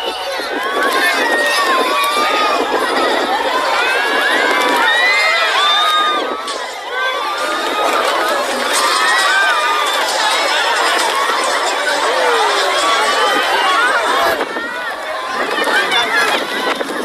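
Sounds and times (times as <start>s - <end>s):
crowd screaming and shouting: 0.0s - 17.0s.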